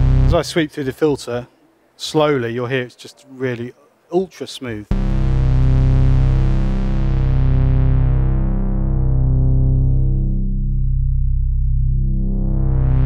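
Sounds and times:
slow synth pulse: 0.0s - 0.4s, 4.9s - 13.0s
synthesizer bass note: 0.0s - 0.4s, 4.9s - 13.0s.

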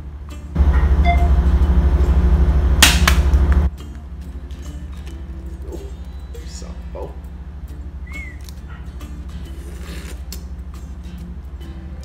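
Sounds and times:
ship engine droning: 0.0s - 12.0s
loud rushing noise: 0.6s - 3.7s.

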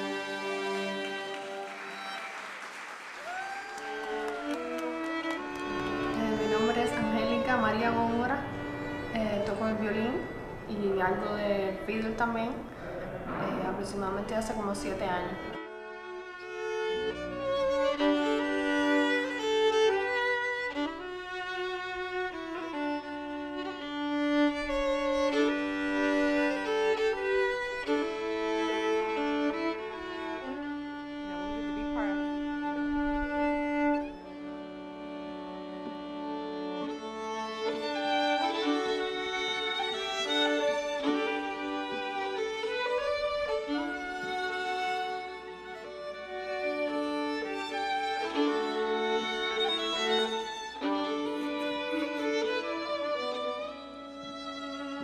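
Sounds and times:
fiddles playing slow folk tune: 0.0s - 2.4s, 3.2s - 12.9s, 14.4s - 55.0s.

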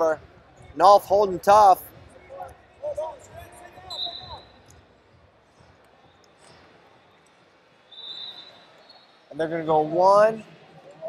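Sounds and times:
short high whistle: 3.9s - 4.6s, 7.9s - 9.2s.

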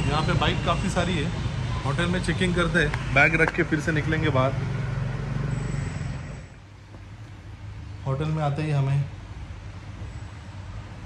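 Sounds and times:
muffled street traffic rumble: 0.0s - 11.0s.

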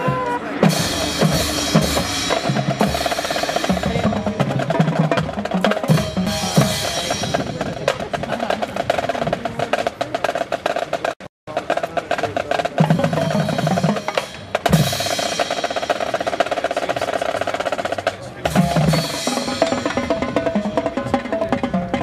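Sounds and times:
marching band percussion: 0.0s - 22.0s.

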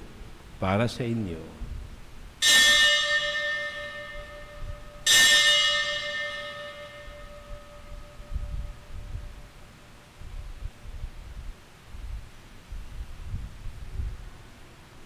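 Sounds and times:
bell ringing: 2.4s - 9.0s.

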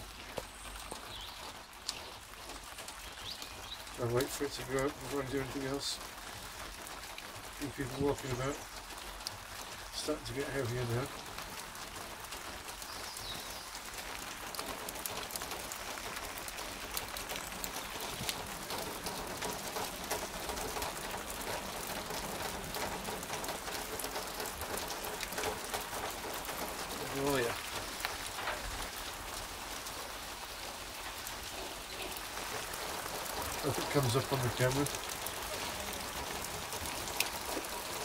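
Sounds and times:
raindrops ticking on surfaces: 0.0s - 38.0s
steady rain falling: 0.0s - 38.0s.

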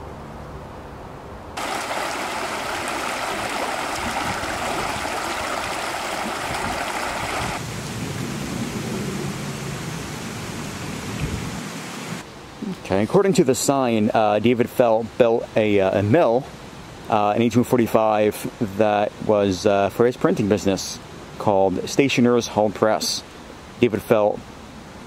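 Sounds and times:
brook rushing over stones: 1.6s - 7.8s.

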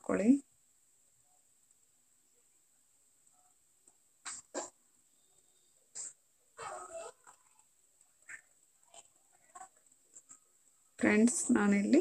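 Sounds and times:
dog barking and yelping: 6.6s - 7.5s.

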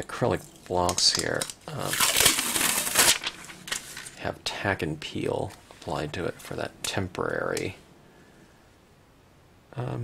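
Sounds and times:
sticky peeling crackle: 0.9s - 3.8s.

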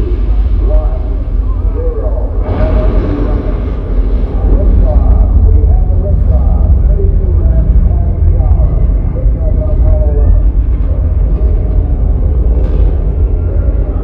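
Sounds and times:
voices talking: 0.0s - 12.4s
rocket launch rumble over loudspeakers: 0.0s - 14.0s.

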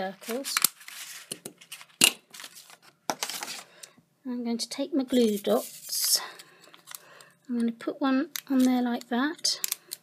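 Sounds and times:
paper handling: 0.2s - 3.7s.

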